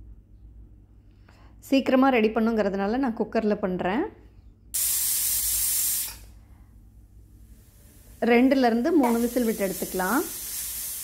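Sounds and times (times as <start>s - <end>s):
pressure cooker steam hissing: 4.8s - 6.3s, 7.4s - 11.0s.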